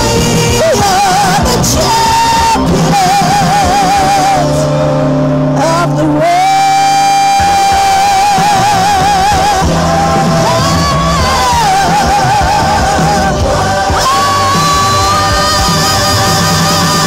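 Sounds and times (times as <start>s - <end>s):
instrumental accompaniment: 0.0s - 17.0s
woman singing with vibrato: 0.0s - 17.0s.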